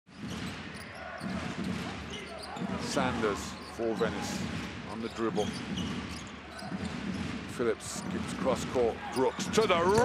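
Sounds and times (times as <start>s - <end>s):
basketball dribbled on hardwood: 4.3s - 8.8s.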